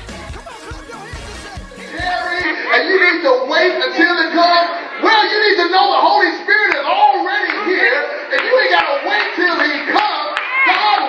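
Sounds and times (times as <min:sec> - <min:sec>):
many voices calling out: 0:00.0 - 0:11.0
congregation clapping: 0:07.4 - 0:11.0.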